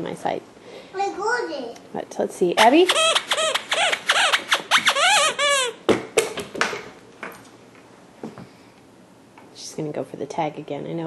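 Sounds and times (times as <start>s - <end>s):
squeaky dog toy squeaking: 2.6s - 5.8s.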